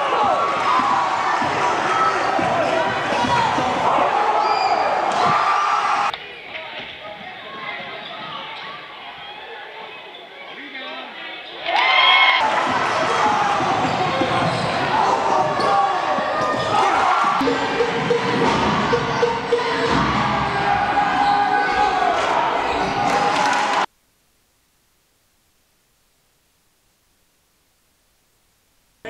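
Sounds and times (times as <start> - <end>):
crowd voices echoing: 0.0 - 23.9
sneakers squeaking: 12.8 - 16.8.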